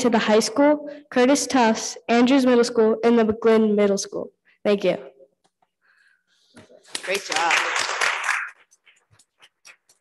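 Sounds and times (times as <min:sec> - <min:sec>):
applause: 0:06.8 - 0:08.9.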